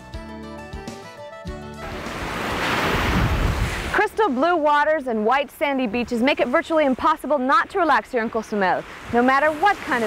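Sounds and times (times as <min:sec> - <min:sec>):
background music: 0:00.0 - 0:03.0
ocean surf on beach: 0:01.8 - 0:10.0.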